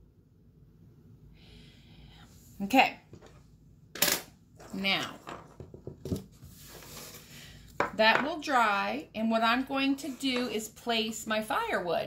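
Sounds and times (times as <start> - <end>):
soft rubbing and rustling: 6.2 - 7.4.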